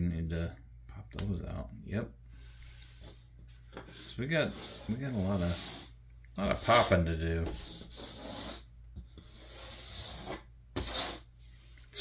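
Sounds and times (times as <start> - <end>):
tool scraping puzzle sheet: 3.8 - 11.7.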